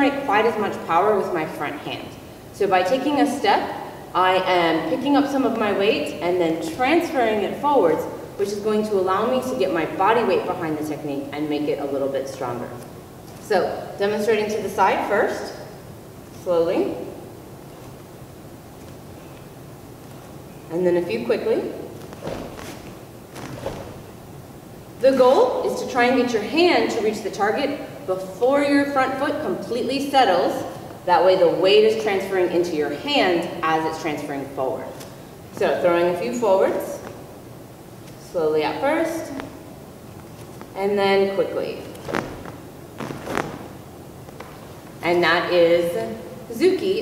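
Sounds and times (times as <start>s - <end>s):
bare feet on foam mat: 12.3s - 13.6s, 16.2s - 24.3s, 34.8s - 45.3s
swishes of karate punches: 22.0s - 24.2s, 42.0s - 44.7s.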